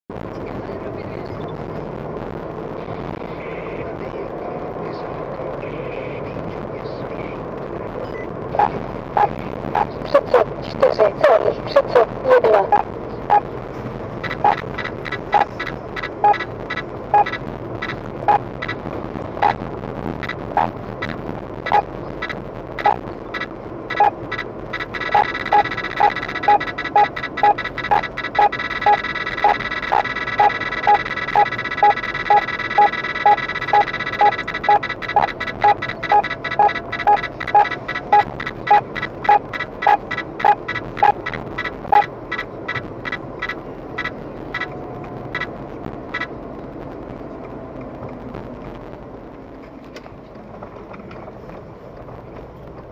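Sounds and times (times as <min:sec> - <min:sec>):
car road noise: 0:00.1 - 0:52.9
radar detector beeping: 0:08.1 - 0:10.0, 0:12.3 - 0:13.5, 0:14.2 - 0:18.8, 0:19.4 - 0:19.6, 0:20.2 - 0:44.7
steady alarm tone: 0:14.2 - 0:18.8, 0:19.4 - 0:19.6, 0:21.7 - 0:44.7.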